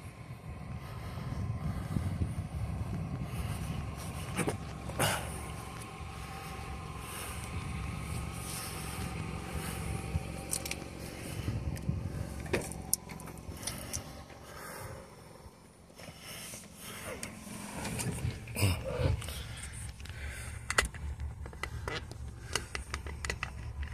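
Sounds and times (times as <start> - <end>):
wind rumbling on microphone: 0.0 - 15.6.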